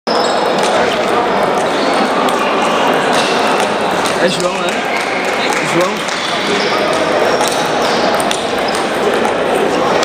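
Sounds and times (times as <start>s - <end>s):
many voices: 0.1s - 10.0s
table tennis balls clicking: 0.2s - 10.0s.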